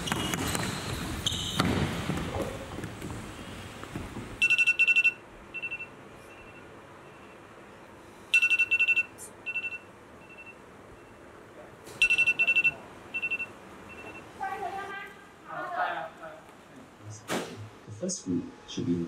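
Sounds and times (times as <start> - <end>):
electronic alarm beeping: 4.4 - 7.5, 8.3 - 11.2, 12.0 - 14.3.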